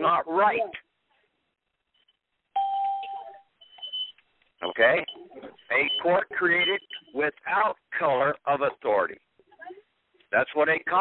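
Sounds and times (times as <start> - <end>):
electronic beep: 2.0 - 7.2.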